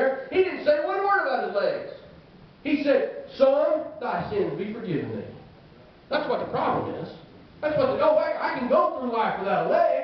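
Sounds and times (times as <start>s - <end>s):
man preaching through microphone: 0.0s - 5.4s, 6.1s - 10.0s.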